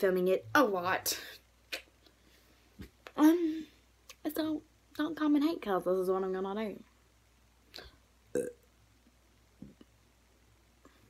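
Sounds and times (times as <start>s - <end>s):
girl burping: 8.4s - 8.6s.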